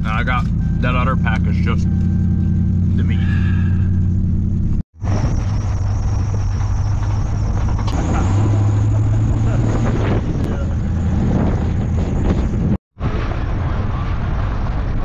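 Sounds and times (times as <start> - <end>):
road noise: 0.0 - 15.0
truck engine drone: 0.0 - 15.0.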